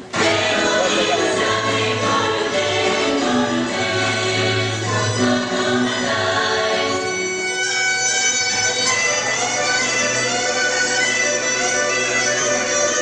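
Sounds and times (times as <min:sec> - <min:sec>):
choir singing sustained tones: 0:00.1 - 0:07.7.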